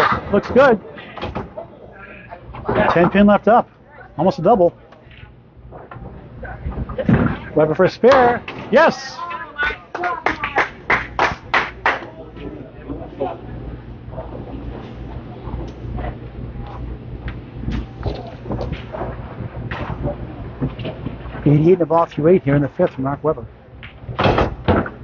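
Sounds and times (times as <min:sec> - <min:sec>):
faint voices: 0:00.0 - 0:24.1
bowling ball rumble: 0:11.0 - 0:21.5.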